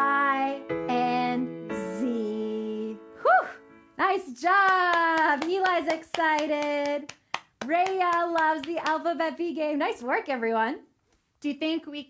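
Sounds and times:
woman clapping quickly: 4.7 - 9.0.

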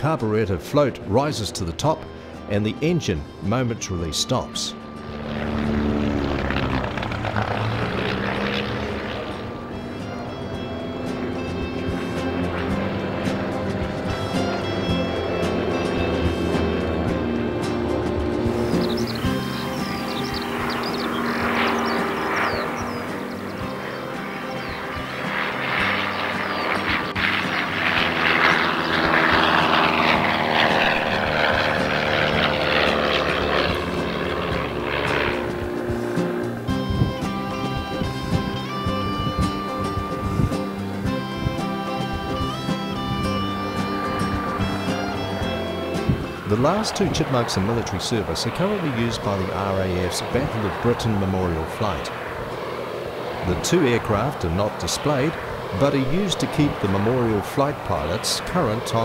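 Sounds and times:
background music: 0.0 - 58.8
propeller airplane engine: 0.0 - 59.0.

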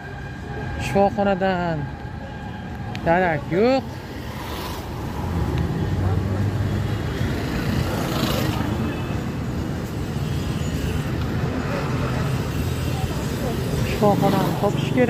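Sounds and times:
road noise: 0.0 - 15.0
vehicle engines humming: 0.0 - 15.0.

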